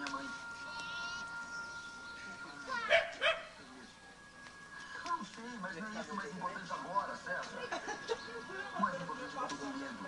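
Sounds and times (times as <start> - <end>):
dog barking: 2.9 - 3.5.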